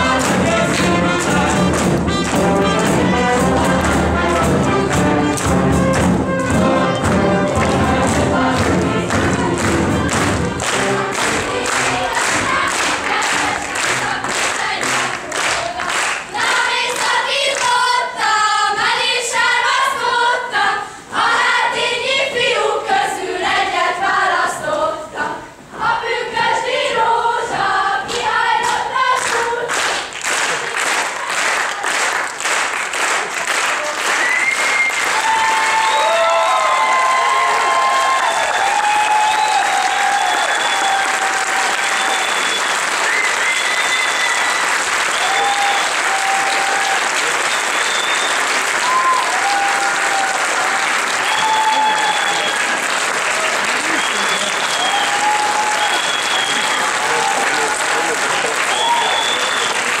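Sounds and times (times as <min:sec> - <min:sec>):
audience applause: 0:00.0 - 0:17.2, 0:29.7 - 1:00.0.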